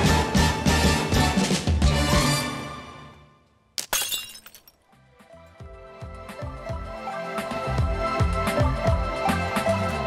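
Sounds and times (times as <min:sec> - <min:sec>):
background music: 0:00.0 - 0:03.5, 0:04.1 - 0:10.0
glass shards tinkling: 0:03.8 - 0:04.8
glass shattering crash: 0:03.8 - 0:04.8.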